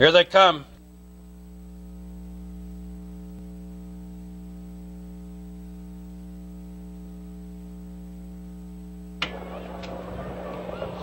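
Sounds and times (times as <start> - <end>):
buzzy electrical mains hum: 0.0 - 11.0.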